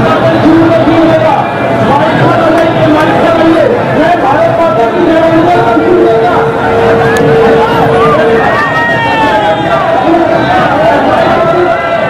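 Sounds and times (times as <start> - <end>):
crowd shouting and cheering: 0.0 - 12.0
steady tone: 3.8 - 11.5.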